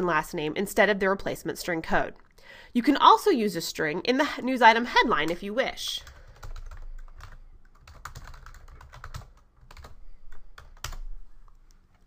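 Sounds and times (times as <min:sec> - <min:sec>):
computer keyboard typing: 0:06.0 - 0:11.6.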